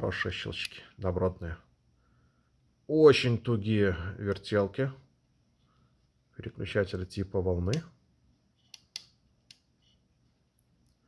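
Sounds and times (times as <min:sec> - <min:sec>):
switch clicks: 0:08.7 - 0:09.7.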